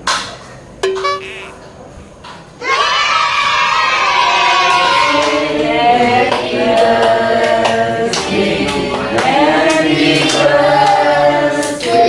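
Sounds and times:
group of voices singing: 0:04.7 - 0:12.0.

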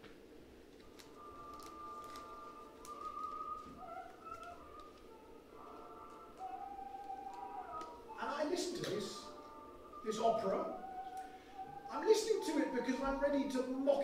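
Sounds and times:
old recorded opera music: 0:00.0 - 0:14.0.

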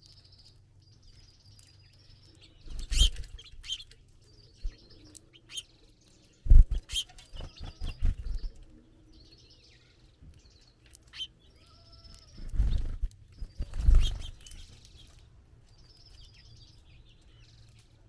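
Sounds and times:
finches chirping: 0:00.0 - 0:17.9.

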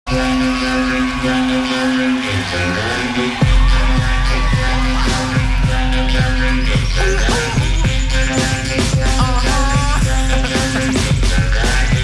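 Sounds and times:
electronic drone: 0:00.1 - 0:12.0.

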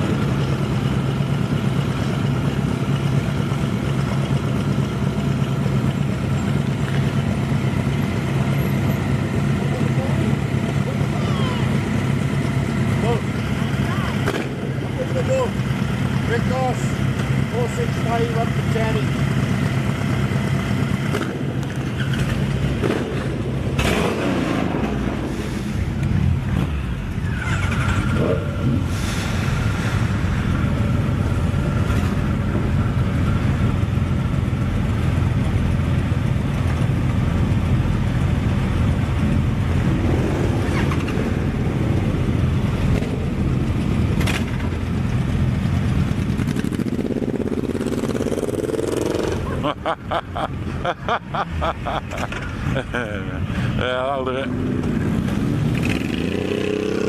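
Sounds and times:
motorcycle engine revving: 0:00.0 - 0:36.8, 0:38.2 - 0:49.8, 0:51.6 - 0:57.0
motorcycle engines idling: 0:00.0 - 0:57.0.

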